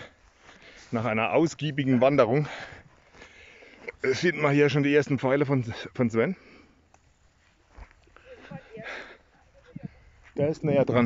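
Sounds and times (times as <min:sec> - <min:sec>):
footsteps through grass: 0:00.0 - 0:04.8, 0:06.8 - 0:11.0.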